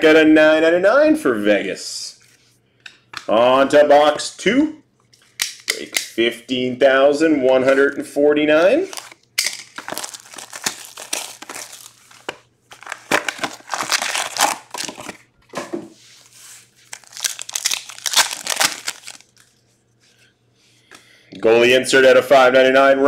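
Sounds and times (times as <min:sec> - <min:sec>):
plastic and foil crinkling: 0:08.8 - 0:15.3, 0:16.2 - 0:19.7
foil card pack tearing: 0:08.9 - 0:15.2, 0:16.8 - 0:19.5.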